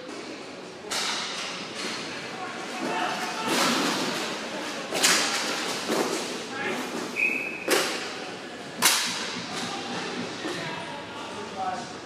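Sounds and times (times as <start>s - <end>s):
hockey sticks and puck cracking: 0.9s - 8.1s
short high whistle: 7.2s - 7.7s.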